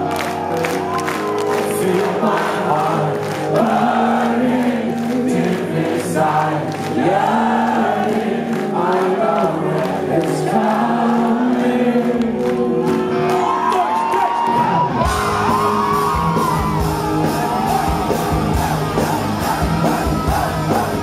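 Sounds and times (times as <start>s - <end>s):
live rock band playing: 0.0s - 7.0s, 14.5s - 21.0s
person singing: 1.3s - 21.0s.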